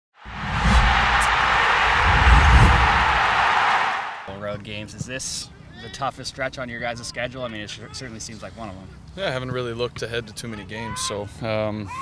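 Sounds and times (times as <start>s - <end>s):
deep rumble: 0.2s - 3.6s
loud rushing noise: 0.2s - 4.3s.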